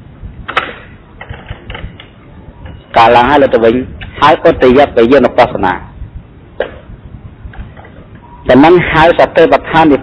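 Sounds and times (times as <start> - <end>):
man talking: 2.9 - 6.0, 8.4 - 10.0.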